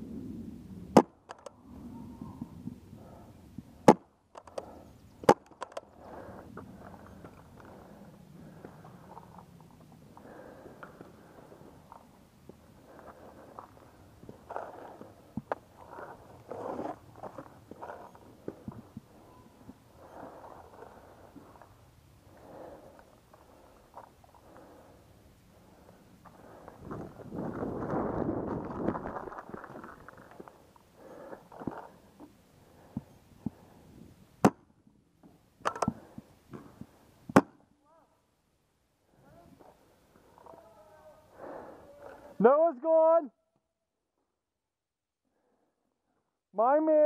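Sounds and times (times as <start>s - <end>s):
paintball marker shots: 3.8s - 5.8s, 37.3s - 37.6s.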